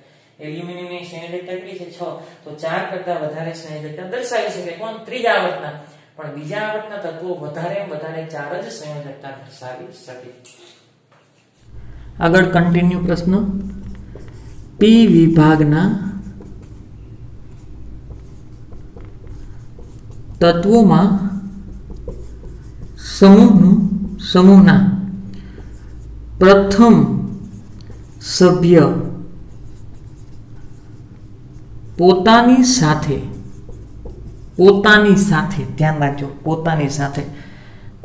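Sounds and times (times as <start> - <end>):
low steady hum: 11.7 - 38.0
marker scratching on whiteboard: 12.3 - 36.2.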